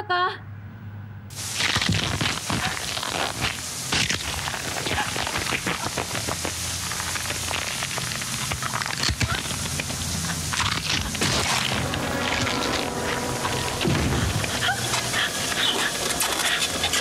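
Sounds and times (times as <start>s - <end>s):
shower water spraying: 1.3s - 17.0s.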